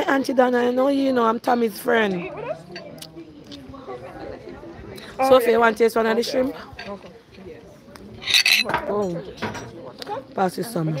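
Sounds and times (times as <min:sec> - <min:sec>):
cutlery clinking on dishes: 0:06.7 - 0:07.1, 0:08.2 - 0:10.0.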